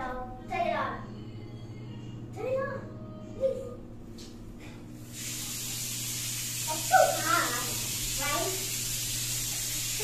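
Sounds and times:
water running into tub: 0:05.1 - 0:10.0.

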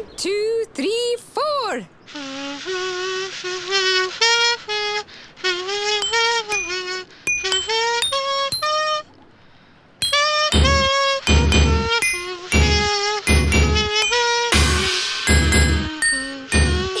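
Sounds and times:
buzzing comb-and-paper tune: 0:06.0 - 0:08.9, 0:10.0 - 0:17.0.

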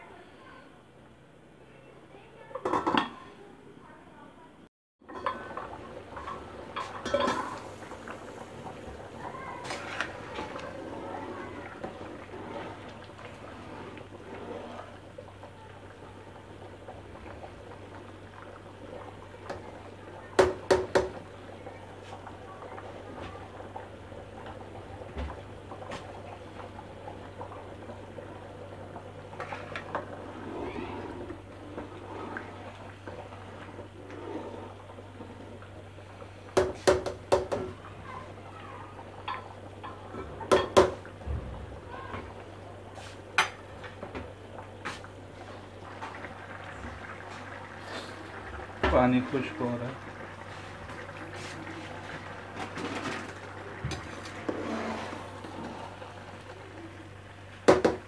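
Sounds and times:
rice boiling in water: 0:05.0 - 0:58.0.

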